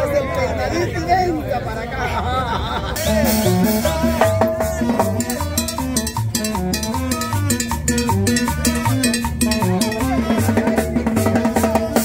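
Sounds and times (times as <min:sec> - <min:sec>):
upright bass: 0:02.9 - 0:12.0
drum kit with cymbals: 0:03.0 - 0:12.0
melody: 0:03.1 - 0:10.6.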